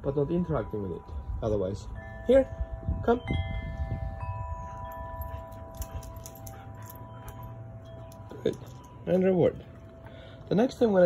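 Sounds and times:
wind chimes ringing: 0.0s - 11.0s.

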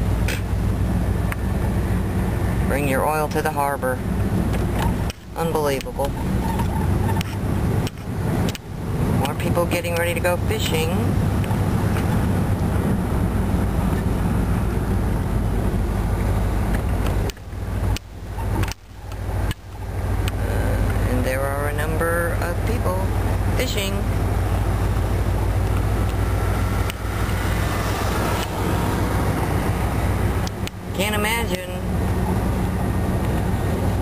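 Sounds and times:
car road and engine rumble: 0.0s - 34.0s.

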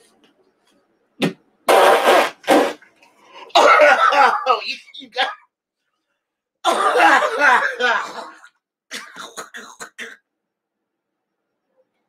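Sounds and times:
man coughing hard: 3.5s - 5.4s, 6.6s - 10.2s.

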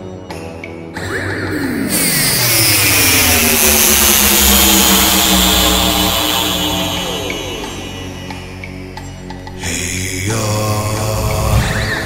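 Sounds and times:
chant-like film music: 0.0s - 12.0s
rushing whoosh sound effect: 11.0s - 12.0s.

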